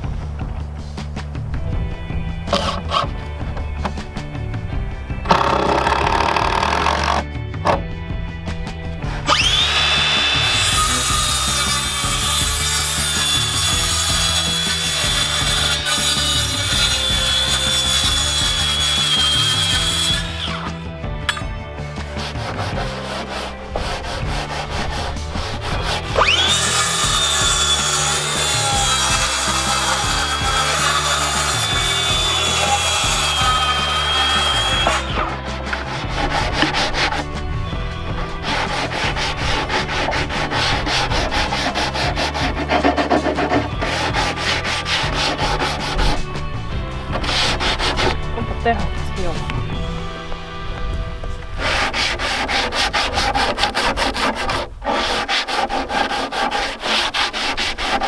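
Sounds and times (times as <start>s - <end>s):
background music: 0.0s - 58.0s
circular saw cutting wood: 2.5s - 4.3s, 5.2s - 7.9s, 8.6s - 58.0s.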